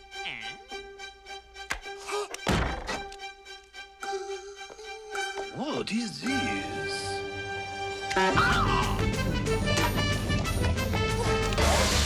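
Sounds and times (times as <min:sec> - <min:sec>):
dull impact thunk: 0:02.4 - 0:03.1.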